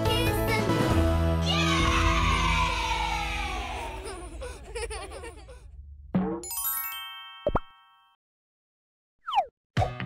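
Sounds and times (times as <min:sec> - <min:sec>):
bright chime: 0:06.4 - 0:08.2.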